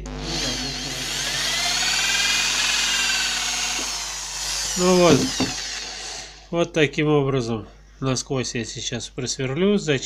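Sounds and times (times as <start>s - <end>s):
electric drill whining: 0.0s - 6.5s.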